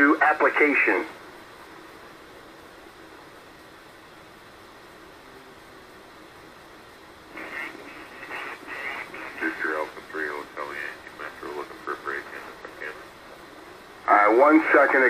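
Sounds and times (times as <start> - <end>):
radio receiver hiss: 0.0 - 15.0
faint radio voice: 7.3 - 13.2, 14.0 - 15.0.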